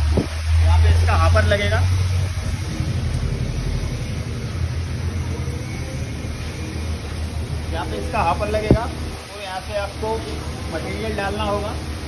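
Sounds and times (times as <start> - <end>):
fluctuating hiss: 0.0 - 12.0
low steady rumble: 0.0 - 12.0.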